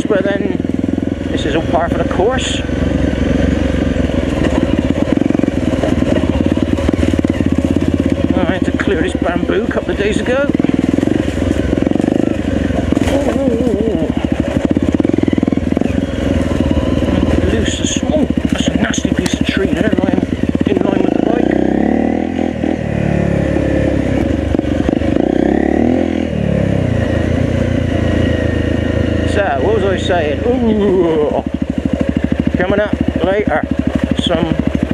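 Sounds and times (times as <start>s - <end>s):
motorcycle engine revving: 0.0s - 34.9s.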